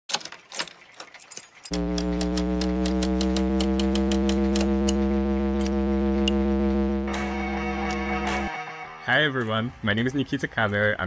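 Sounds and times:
irregular clicks: 0.1 - 5.0
quick regular ticking: 1.7 - 6.4
steady low hum: 1.7 - 8.1.

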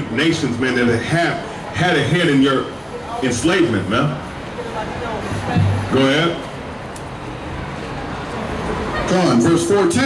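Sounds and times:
city street traffic noise: 0.0 - 10.0.

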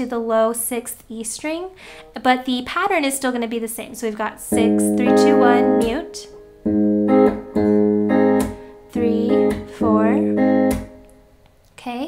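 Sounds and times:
fingerpicked electric guitar: 4.5 - 11.4
hand slapping guitar strings: 5.2 - 6.0, 7.2 - 11.5.

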